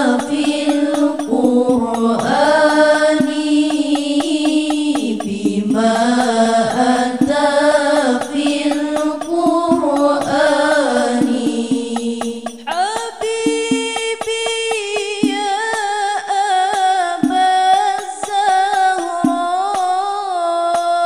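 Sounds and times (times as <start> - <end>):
girls singing together: 0.0 - 21.0
light rhythmic tick: 0.0 - 21.0.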